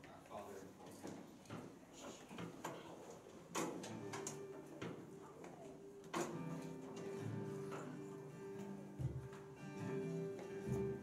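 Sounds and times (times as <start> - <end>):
acoustic guitar strumming: 6.2 - 11.0.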